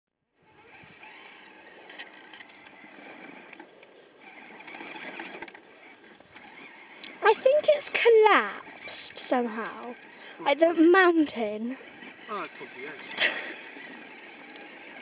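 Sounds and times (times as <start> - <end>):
electric drivetrain whirring: 0.3 - 15.0.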